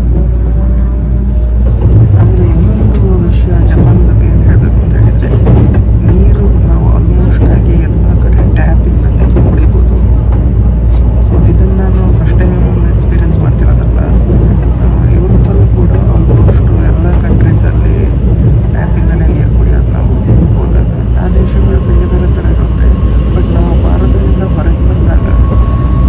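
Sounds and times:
train rumbling at speed: 0.0 - 26.0
person speaking: 2.0 - 10.2, 10.9 - 25.7.

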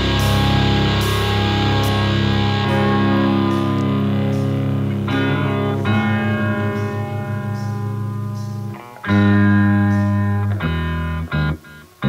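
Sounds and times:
distorted electric guitar chords: 0.0 - 12.0.

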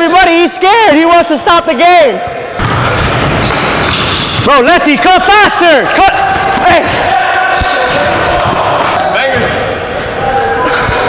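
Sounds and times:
players shouting and chattering: 0.0 - 11.0.

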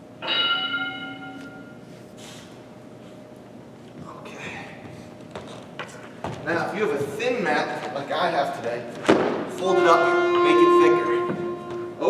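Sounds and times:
timer bell chime: 0.2 - 1.8.

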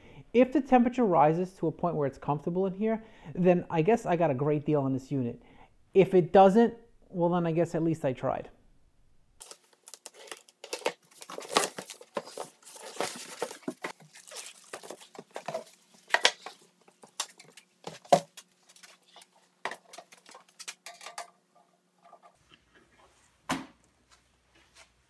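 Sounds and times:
plastic wrapping crinkling and tearing: 9.4 - 20.9.

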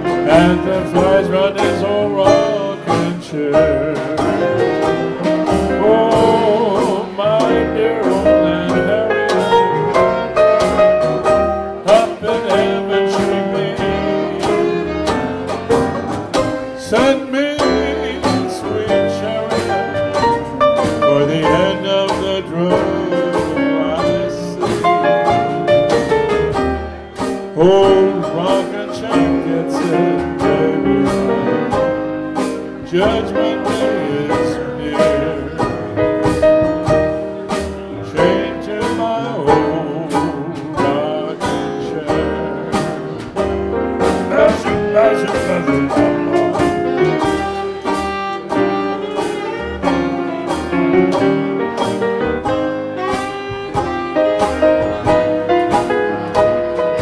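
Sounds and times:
big band playing live: 0.0 - 57.0
drums: 0.0 - 57.0
strummed rhythm chords: 0.0 - 57.0
trumpet melody: 0.0 - 57.0
upright bass: 0.0 - 57.0.

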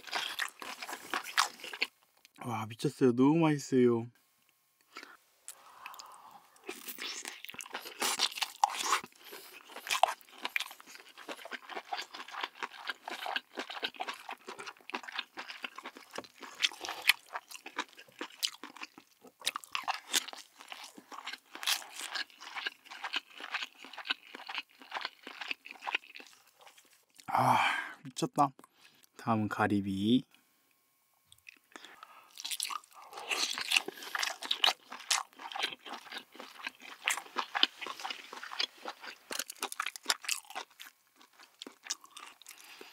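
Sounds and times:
close chewing with mouth clicks: 0.0 - 2.4, 4.9 - 27.3, 31.3 - 42.9.

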